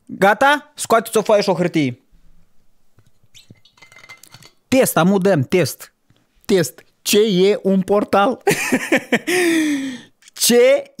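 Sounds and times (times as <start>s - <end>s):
metal bottle clicks and clinks: 3.4s - 4.6s.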